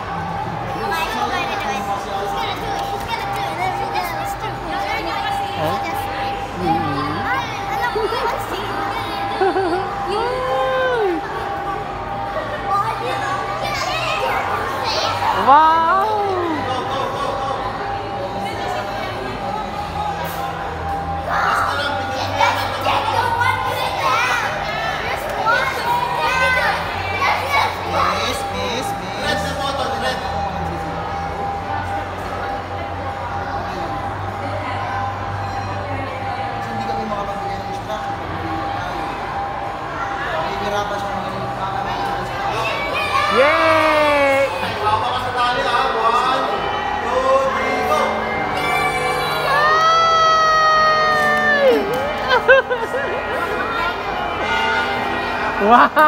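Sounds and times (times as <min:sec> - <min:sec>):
background music: 0:00.0 - 0:56.0
children chattering and calling out: 0:00.0 - 0:56.0
crowd noise: 0:00.0 - 0:56.0.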